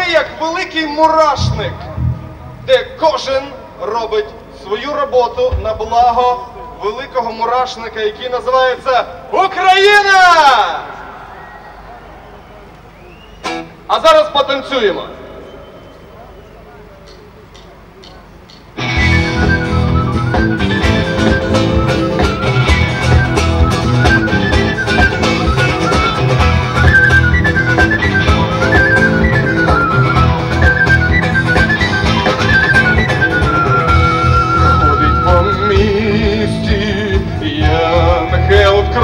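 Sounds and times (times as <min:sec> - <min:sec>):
band playing fast dance tune: 0:01.1 - 0:03.0, 0:18.5 - 0:39.0.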